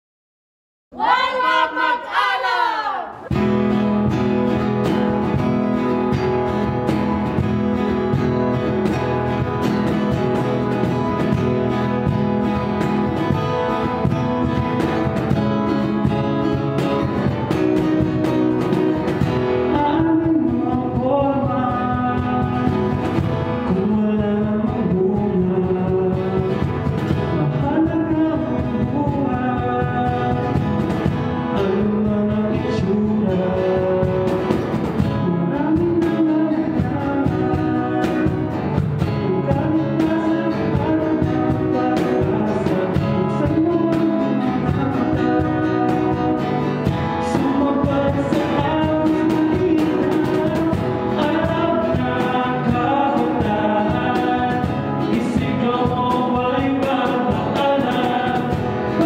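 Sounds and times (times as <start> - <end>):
acoustic guitar: 3.1 - 59.0
cajon beat: 3.1 - 59.0
man singing: 15.3 - 59.0.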